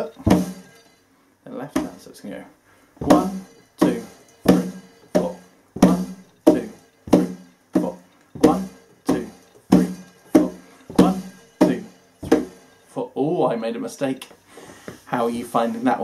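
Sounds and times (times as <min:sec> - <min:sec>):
foot stomps: 0:00.0 - 0:00.8, 0:03.0 - 0:12.8
hand strikes on cajon: 0:00.2 - 0:00.6, 0:03.0 - 0:12.6.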